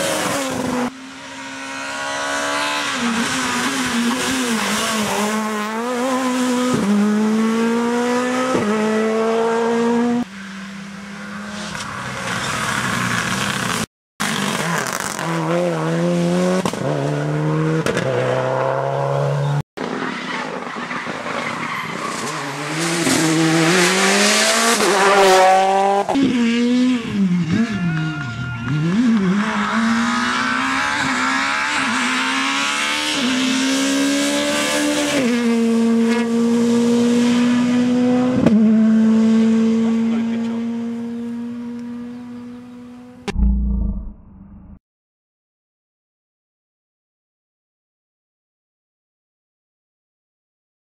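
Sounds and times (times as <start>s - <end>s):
rally car engine at full throttle: 0.0s - 44.7s.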